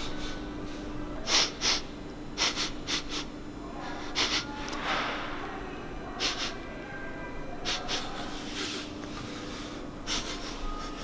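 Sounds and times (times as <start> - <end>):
man sniffing: 1.3 - 3.3.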